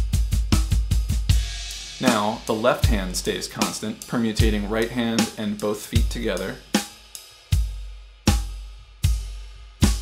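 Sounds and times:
drum kit playing: 0.0 - 10.0.

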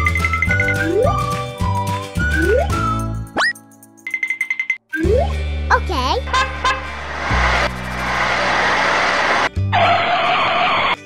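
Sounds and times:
music: 0.0 - 11.0
truck horn honking: 6.3 - 7.2.

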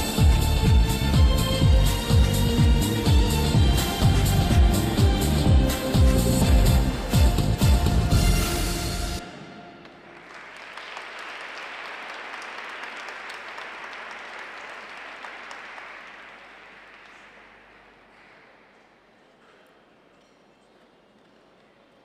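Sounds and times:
music: 0.0 - 10.2
audience applauding: 9.8 - 18.9.

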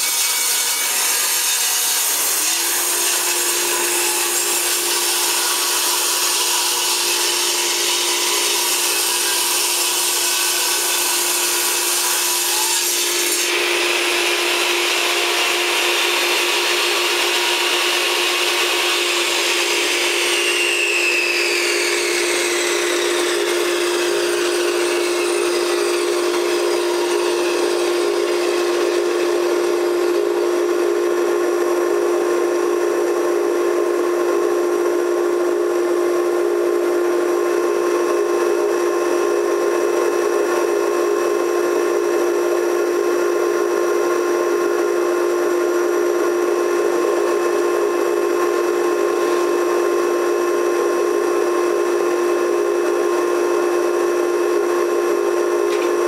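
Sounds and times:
shop vacuum humming: 0.0 - 56.0
saw blade whine winding down: 2.2 - 56.0.

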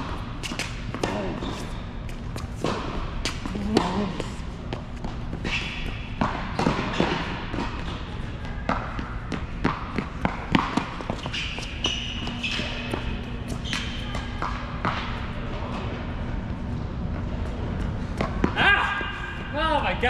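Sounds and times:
tennis ball bouncing and struck: 5.0 - 15.3
shoe squeaks on court: 11.0 - 14.4.

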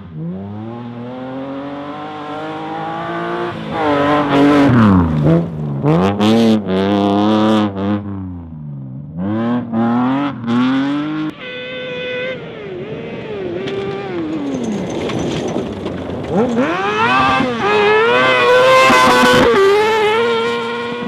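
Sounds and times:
rally car engine revving: 0.0 - 11.3, 12.0 - 21.0
off-road buggy engine: 0.0 - 21.0.

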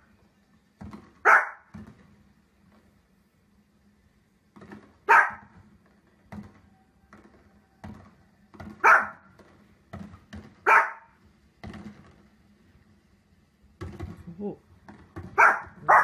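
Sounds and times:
small dog barking: 1.2 - 1.7, 5.0 - 5.6, 8.8 - 9.3, 10.6 - 11.2, 15.3 - 16.0.

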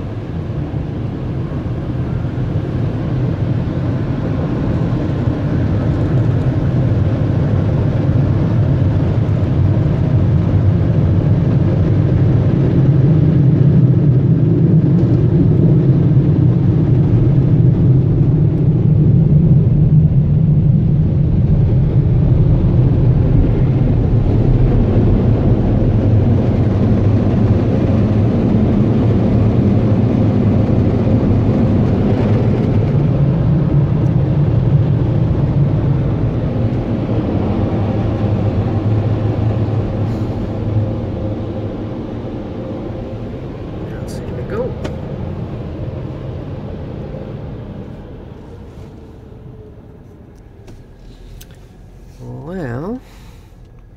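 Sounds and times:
car wash air dryers roaring: 0.0 - 53.9.

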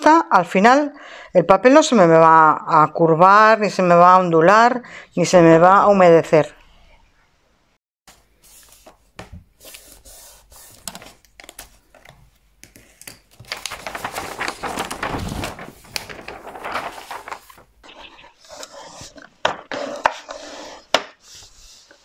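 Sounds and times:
paper sheets rustling and sliding: 8.1 - 22.0.

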